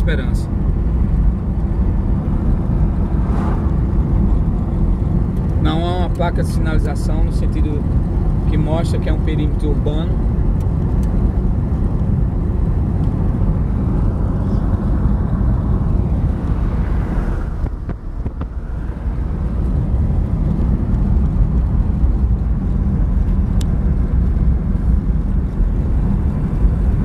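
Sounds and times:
car engine and tyre rumble: 0.0s - 27.0s.

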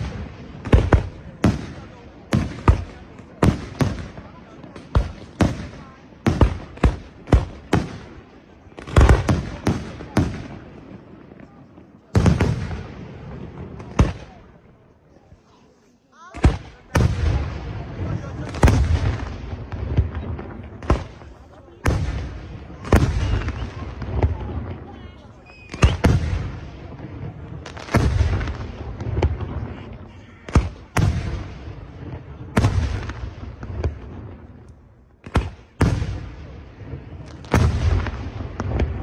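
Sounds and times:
low rumble of booms and echoes: 16.5s - 25.3s, 26.0s - 34.6s, 35.2s - 39.0s.

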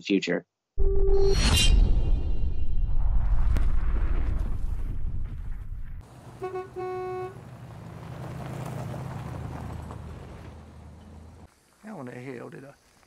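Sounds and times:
deep rumbling whoosh: 0.9s - 6.0s
car horn honking: 6.3s - 7.5s.

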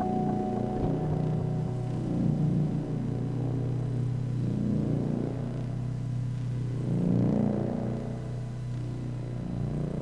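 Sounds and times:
electronic oscillator drone: 0.0s - 10.0s.

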